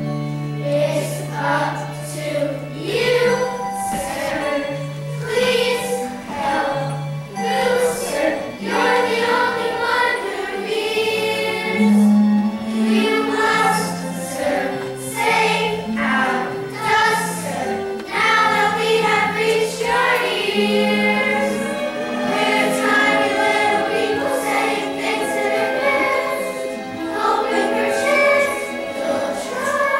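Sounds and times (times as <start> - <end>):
children's chorus singing: 0.0 - 29.9
instrumental accompaniment: 0.0 - 29.9.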